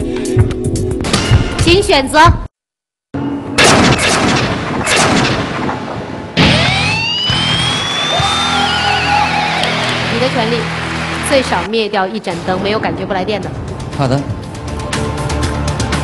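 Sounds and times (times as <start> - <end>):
booming hits: 3.6 - 7.8.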